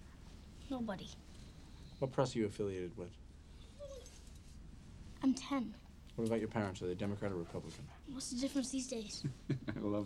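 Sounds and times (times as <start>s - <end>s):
dog whining: 3.6s - 4.2s.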